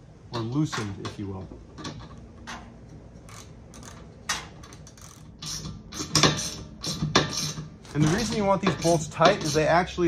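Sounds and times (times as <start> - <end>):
hand ratchet clicking: 1.8 - 9.7.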